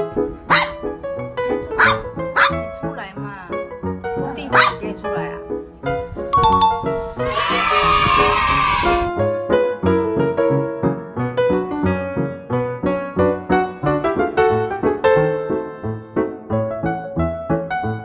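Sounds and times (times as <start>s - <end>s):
background piano music: 0.0s - 18.0s
small dog barking: 0.5s - 0.8s, 1.8s - 2.6s, 4.5s - 4.8s.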